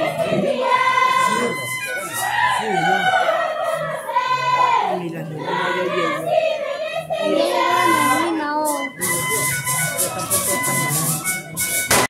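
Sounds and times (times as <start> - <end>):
women and girls singing in chorus: 0.0 - 8.3.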